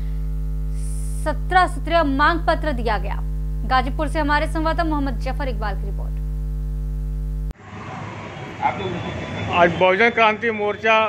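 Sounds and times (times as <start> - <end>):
electrical mains hum: 0.0 - 7.6
outdoor background noise: 7.5 - 11.0.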